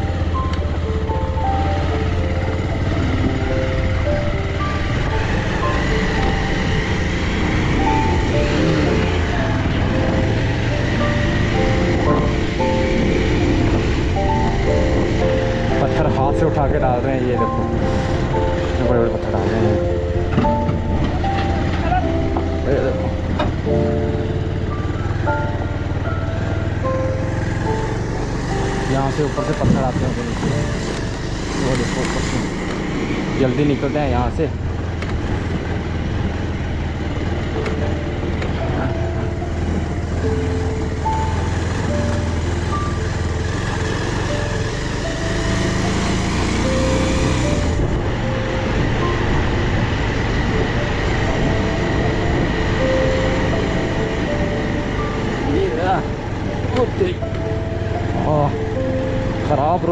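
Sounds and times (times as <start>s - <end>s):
background music: 0.0s - 59.9s
motorcycle engine running: 0.0s - 59.9s.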